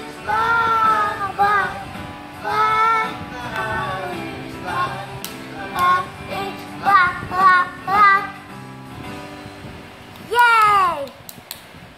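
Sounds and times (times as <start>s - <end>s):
backing music: 0.0s - 10.4s
child singing: 0.2s - 4.1s, 4.7s - 8.5s.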